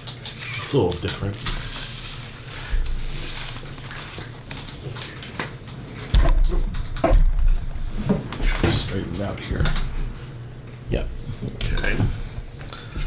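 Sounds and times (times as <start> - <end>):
camera handling thumps and rumble: 2.6 - 10.0.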